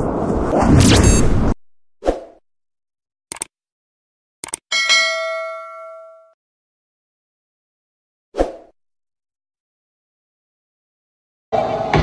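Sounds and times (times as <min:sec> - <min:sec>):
bright bell-like ding: 0:04.7 - 0:06.4.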